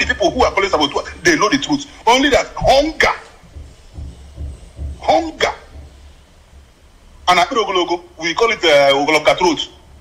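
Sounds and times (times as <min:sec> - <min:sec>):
person speaking: 0:00.0 - 0:06.0, 0:07.2 - 0:09.9
low rumbling bumps: 0:00.0 - 0:07.3.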